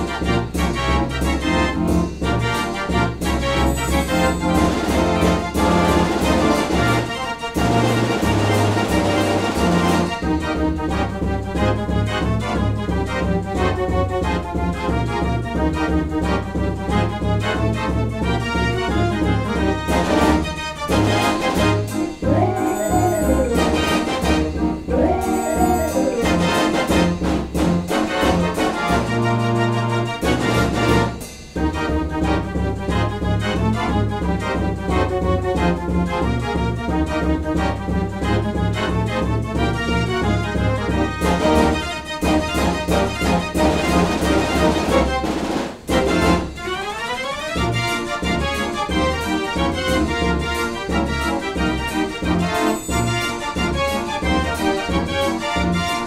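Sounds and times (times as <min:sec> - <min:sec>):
pipe dance organ playing: 0:21.2 - 0:28.5.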